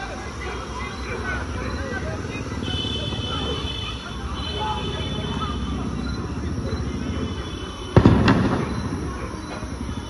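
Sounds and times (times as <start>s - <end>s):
steady background noise: 0.0s - 10.0s
loud bang: 7.9s - 9.2s
sharp crack: 8.0s - 9.7s.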